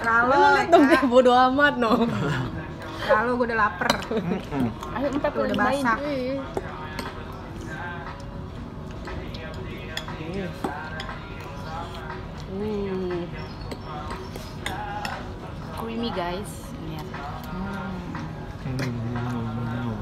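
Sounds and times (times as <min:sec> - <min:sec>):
restaurant chatter: 0:00.0 - 0:20.0.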